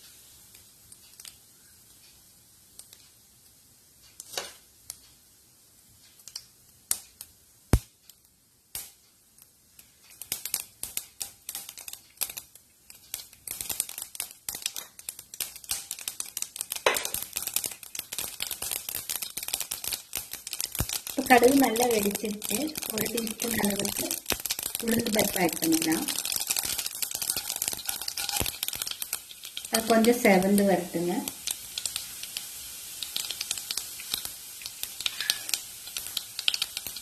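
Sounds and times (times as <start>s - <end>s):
mustard seeds crackling in hot oil: 0.0s - 37.0s.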